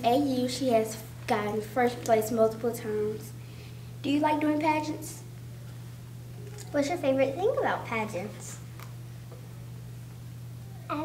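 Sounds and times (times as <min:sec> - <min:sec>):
child speaking: 0:00.0 - 0:03.4, 0:04.0 - 0:05.3, 0:06.5 - 0:08.7, 0:10.8 - 0:11.0
low electrical hum: 0:00.0 - 0:11.0.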